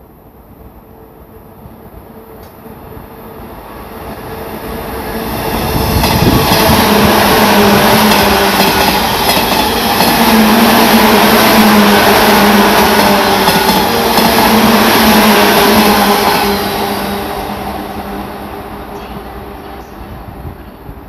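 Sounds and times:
steady train hum: 0:00.0 - 0:21.0
train wheels on rails: 0:01.5 - 0:21.0.

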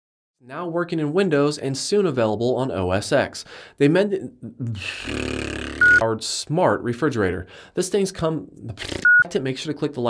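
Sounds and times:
man speaking: 0:00.4 - 0:05.4
man making buzzing noise: 0:04.6 - 0:06.0
short high-pitched beep: 0:05.8 - 0:06.0.

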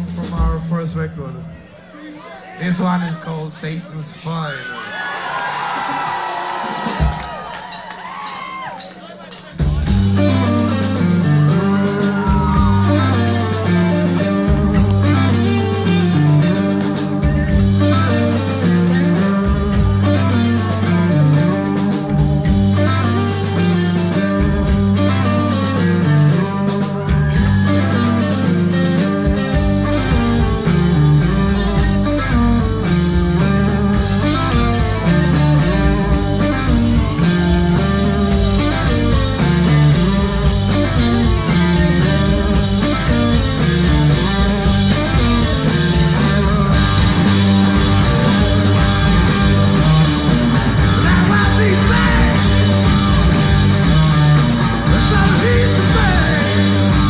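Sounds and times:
blues-rock band playing: 0:00.0 - 0:01.6, 0:05.3 - 0:57.0
drum and cymbal hits: 0:06.6 - 0:57.0
electric guitar riff: 0:09.6 - 0:57.0.

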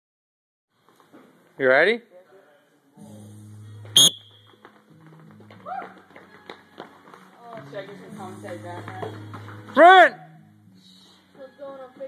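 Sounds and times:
background music: 0:02.8 - 0:12.0.

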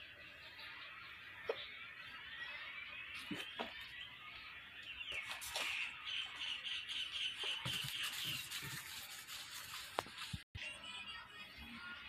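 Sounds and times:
bird chirping rapidly: 0:04.9 - 0:08.6.

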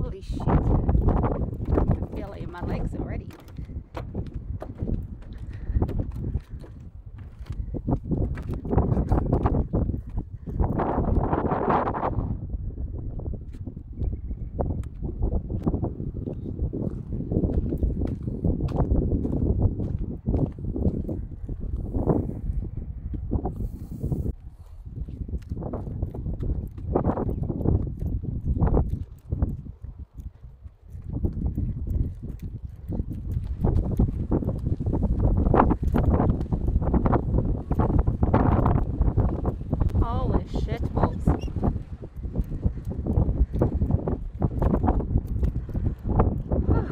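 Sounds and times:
wind buffeting microphone: 0:00.0 - 0:46.9
footsteps on wooden boardwalk: 0:00.5 - 0:11.6, 0:14.8 - 0:23.4, 0:24.0 - 0:40.0, 0:41.3 - 0:46.6.

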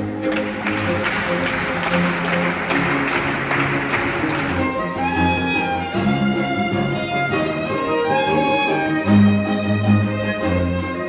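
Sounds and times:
string quartet music: 0:00.0 - 0:11.0.

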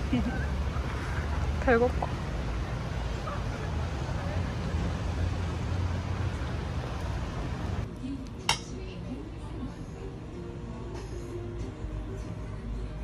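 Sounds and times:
low traffic rumble: 0:00.0 - 0:13.0
metal tableware clink: 0:08.5 - 0:08.7.

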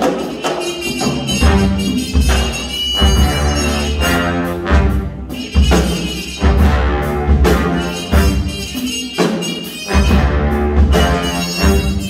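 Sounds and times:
big band jazz ensemble: 0:00.0 - 0:12.0
trumpet solo: 0:00.3 - 0:12.0.

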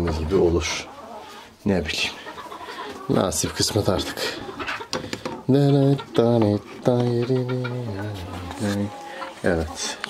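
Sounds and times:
chicken calling: 0:00.6 - 0:10.0.

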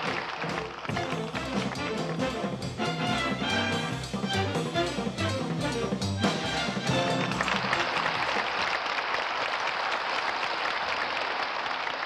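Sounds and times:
audience applause: 0:00.0 - 0:02.2, 0:06.3 - 0:12.0
brass band music: 0:00.0 - 0:08.6.

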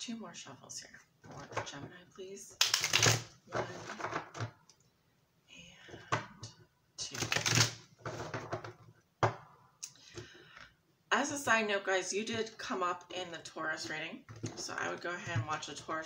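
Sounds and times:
cards riffle-shuffled: 0:02.6 - 0:03.2, 0:07.1 - 0:07.8.

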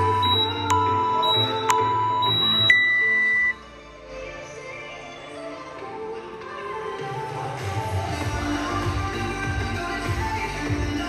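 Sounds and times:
high electronic beep: 0:00.0 - 0:03.6
background music: 0:00.0 - 0:11.0.

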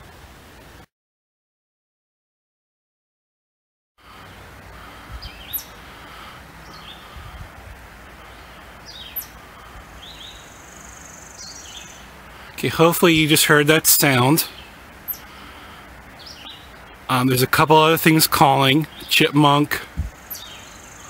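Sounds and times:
warbler trill: 0:04.2 - 0:07.4, 0:08.2 - 0:17.4, 0:20.1 - 0:21.0
vireo song phrases: 0:11.7 - 0:20.0.

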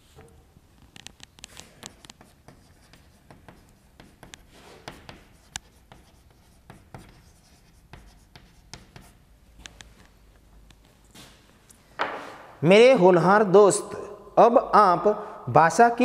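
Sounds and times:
chalk writing on chalkboard: 0:01.5 - 0:09.2.

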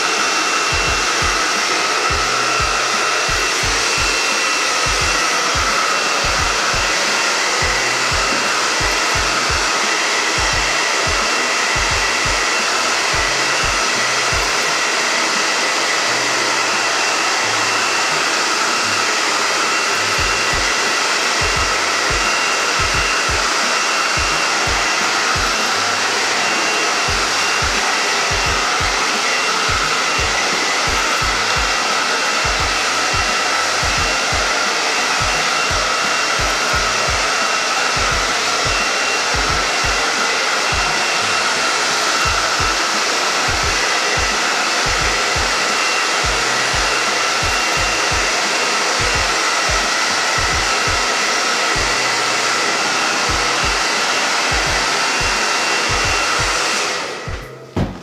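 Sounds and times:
hair dryer blowing air: 0:00.0 - 0:58.0.

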